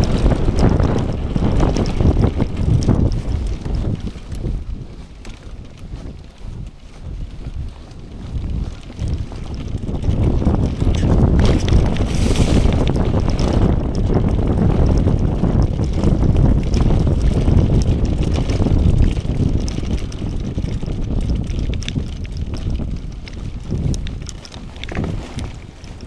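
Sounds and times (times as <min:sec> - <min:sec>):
bike tyre rumble: 0:00.0 - 0:26.0
wind buffeting microphone: 0:00.0 - 0:26.0
clicks and rattles: 0:08.4 - 0:26.0.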